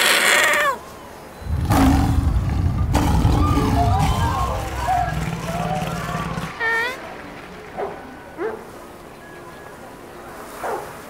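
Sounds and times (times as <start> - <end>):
low rumble: 1.4 - 6.6.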